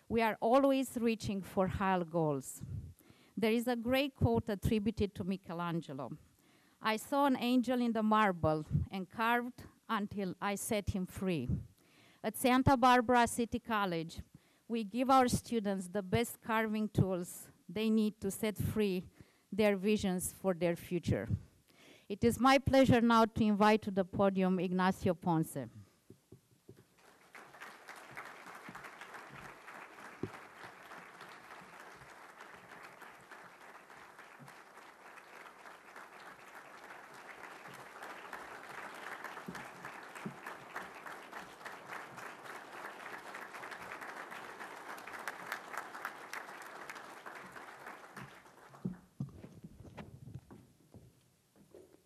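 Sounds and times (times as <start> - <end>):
audience applauding: 26.9 - 49.1.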